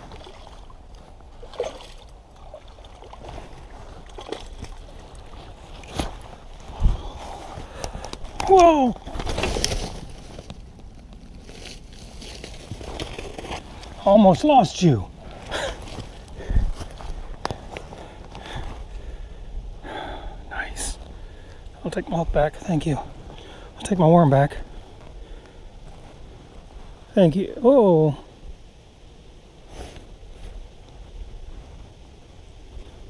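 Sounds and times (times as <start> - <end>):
wind rumble on microphone: 0.0 - 14.0, 15.0 - 23.4
rustling in dry leaves: 0.0 - 19.8, 20.5 - 33.0.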